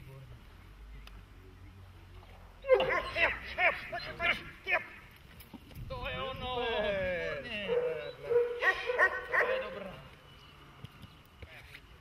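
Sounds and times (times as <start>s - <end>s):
dog whining and yelping: 2.6s - 3.4s.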